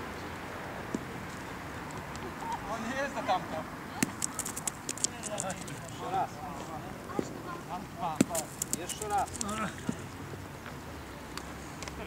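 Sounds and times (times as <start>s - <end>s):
background voices talking: 2.2s - 10.2s
balls clicking on gravel: 4.0s - 6.0s, 8.2s - 9.7s.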